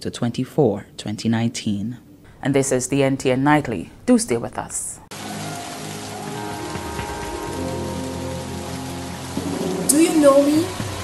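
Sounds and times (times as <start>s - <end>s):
steady rain falling: 5.1s - 11.0s
low long-held music notes: 5.2s - 11.0s.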